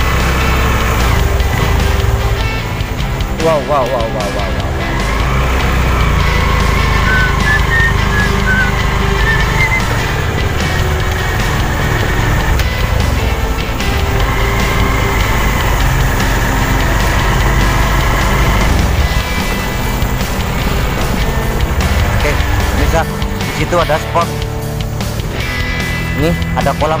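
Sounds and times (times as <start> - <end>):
background music with melody: 0.0 - 27.0
vehicle rumbling on bumpy track: 0.0 - 27.0.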